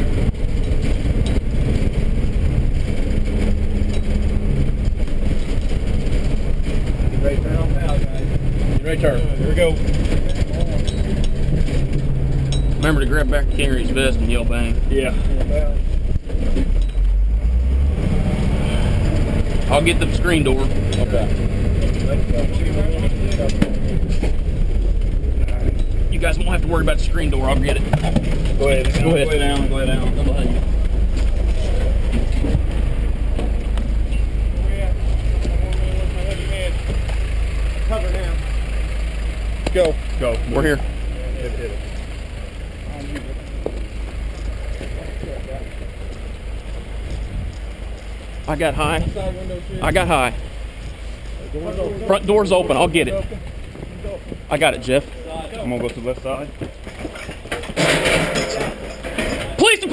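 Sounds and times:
road rumble: 0.0s - 59.9s
truck engine droning: 0.0s - 59.9s.

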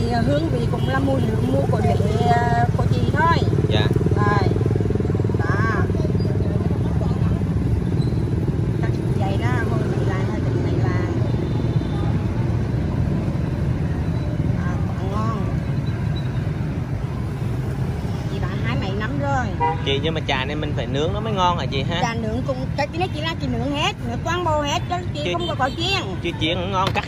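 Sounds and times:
motorbike traffic rumble: 0.0s - 27.0s.

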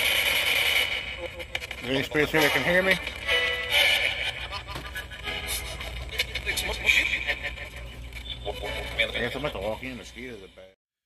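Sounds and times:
steady low rumble: 0.0s - 10.3s
radio voice fragments: 0.7s - 4.9s.

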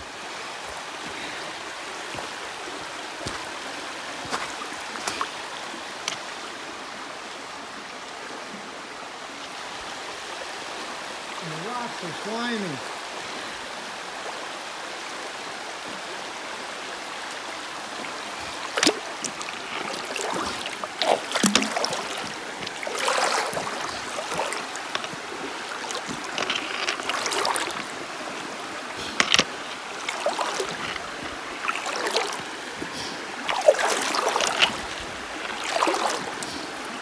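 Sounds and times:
feet wading through water: 0.0s - 6.6s, 17.3s - 37.0s
river flowing over rocks: 0.0s - 37.0s.

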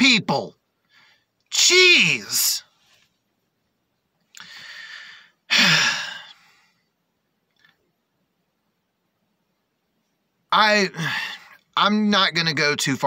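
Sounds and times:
man sighing: 4.4s - 6.5s, 11.0s - 11.5s
man breathing in: 4.4s - 6.8s.

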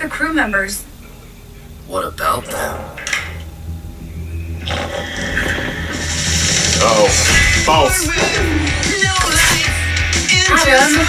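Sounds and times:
steady low rumble: 0.0s - 10.0s
trailer music: 0.9s - 10.3s.

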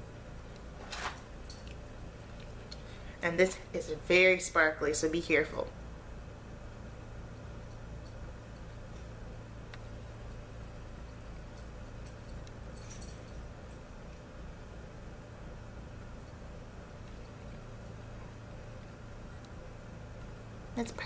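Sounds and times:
steady low hum: 0.0s - 21.0s
light jingles: 11.0s - 14.9s.

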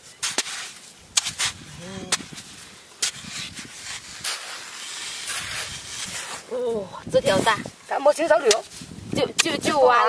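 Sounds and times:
hands scraping through mud: 0.1s - 7.7s
hoe blade striking mud: 0.2s - 2.3s, 9.4s - 9.8s.

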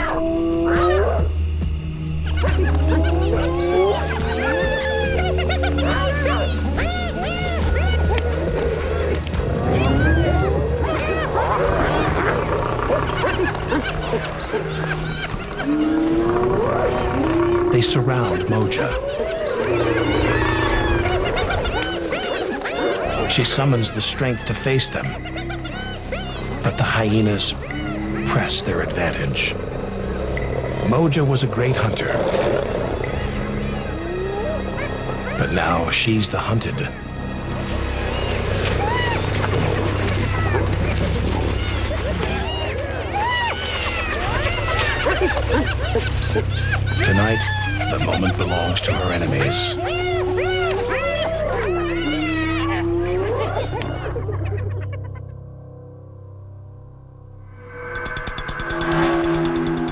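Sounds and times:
hyenas yelping: 0.0s - 55.9s, 57.6s - 59.9s
low music drone: 0.0s - 59.9s
high squeals: 57.5s - 59.9s.

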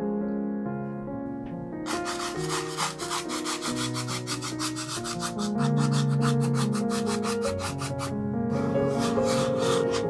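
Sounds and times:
background piano music: 0.0s - 10.0s
paintbrush scrubbing on wood: 1.9s - 10.0s.

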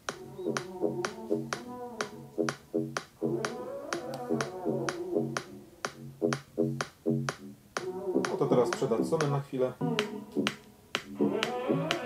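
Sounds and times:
snap-like click on the beat: 0.0s - 8.4s, 10.0s - 11.6s
pop music from small speaker: 0.0s - 12.0s.

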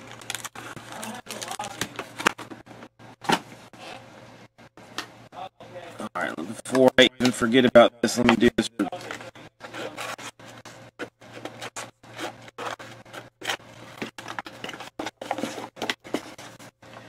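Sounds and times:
rubbing and scraping by hand: 9.0s - 16.8s.

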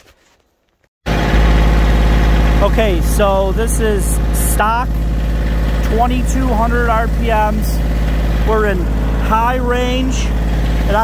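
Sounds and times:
tractor diesel engine running: 1.1s - 11.0s.

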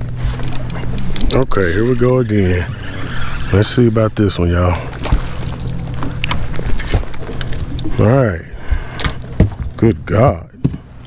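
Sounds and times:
fish flopping on boat deck: 0.0s - 9.8s.

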